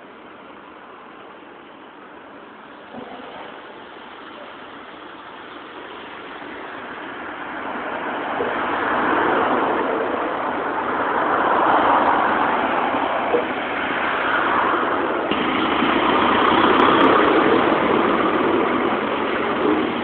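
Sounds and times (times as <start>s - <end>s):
cars driving past: 2.7s - 20.0s.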